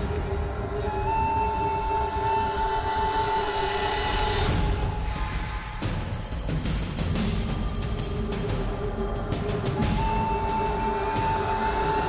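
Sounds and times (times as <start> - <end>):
sustained droning tones: 1.7 - 11.9.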